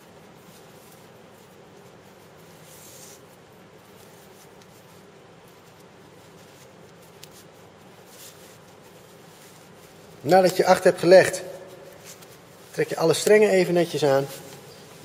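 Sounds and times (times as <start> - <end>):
low room hum: 0.0 - 15.0
rope rustling through a knot: 0.0 - 15.0.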